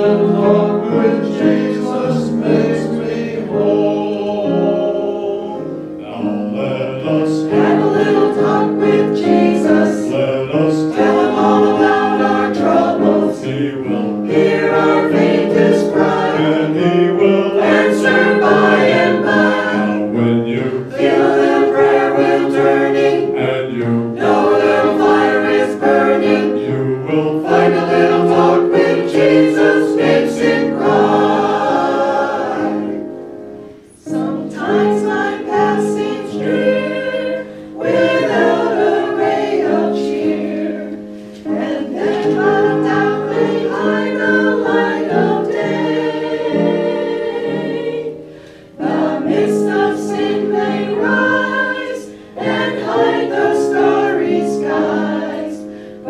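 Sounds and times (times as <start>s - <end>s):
mixed choir singing gospel: 0.0s - 56.0s
piano accompaniment: 0.0s - 56.0s.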